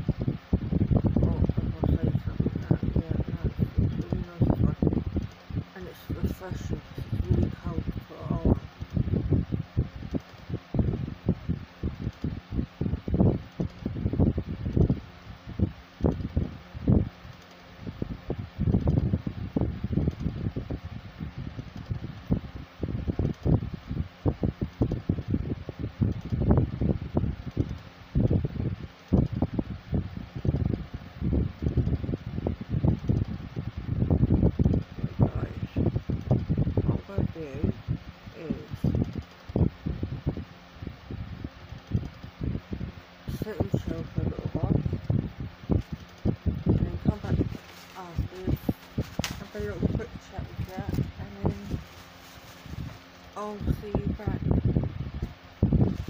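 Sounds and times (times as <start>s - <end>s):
low rumbling wind buffeting on microphone: 0.0s - 56.0s.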